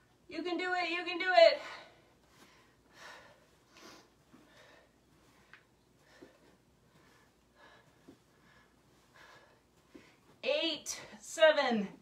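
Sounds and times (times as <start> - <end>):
heavy breathing: 1.7 - 10.4.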